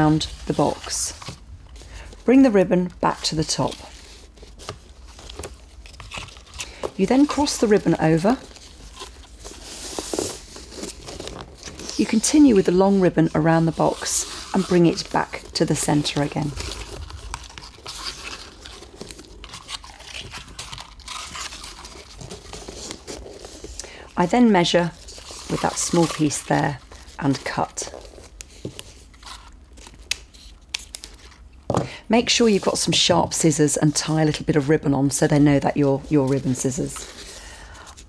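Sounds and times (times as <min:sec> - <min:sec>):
ribbon rustling over paper: 0:00.0 - 0:31.5.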